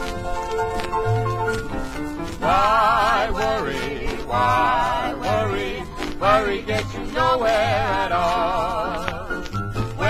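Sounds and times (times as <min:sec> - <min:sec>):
instrumental music from old record: 0:00.0 - 0:10.0.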